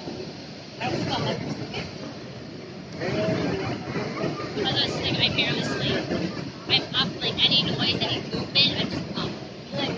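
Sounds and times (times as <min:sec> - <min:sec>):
low background rush: 0:00.0 - 0:09.9
people talking: 0:00.8 - 0:02.2, 0:02.9 - 0:09.9.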